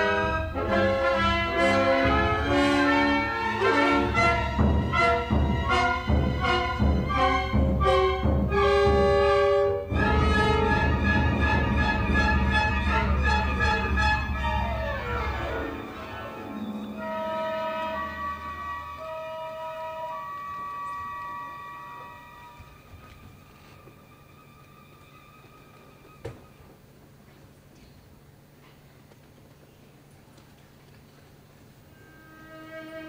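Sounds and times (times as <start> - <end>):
orchestra playing ballet music: 0.0 - 26.8.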